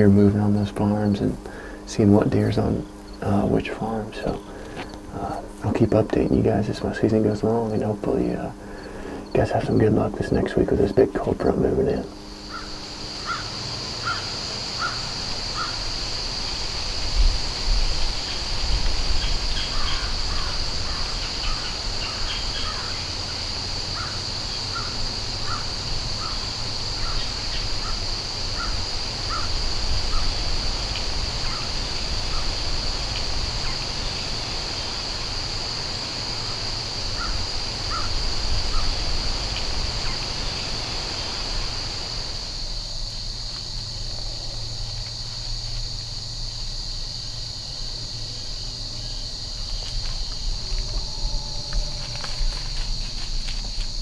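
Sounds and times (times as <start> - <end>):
chorus of insects: 0.0 - 54.0
bird calling: 0.7 - 10.9, 12.0 - 16.7, 18.2 - 42.1.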